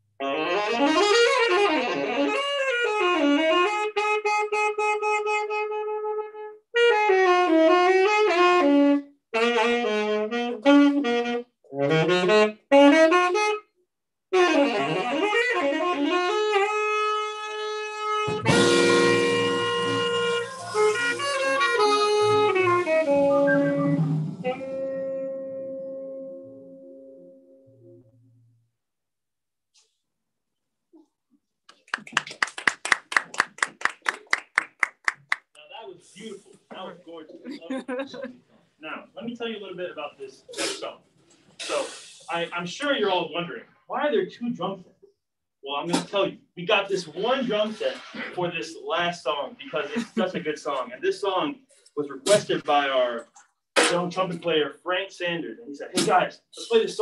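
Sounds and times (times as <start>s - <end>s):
jazz saxophone solo: 0.2s - 13.7s, 14.3s - 27.2s
band with flute: 14.4s - 25.3s.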